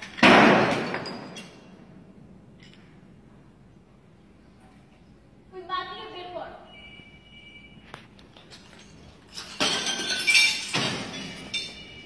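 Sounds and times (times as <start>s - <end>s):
glass crashing: 0.0s - 1.7s, 8.5s - 12.0s.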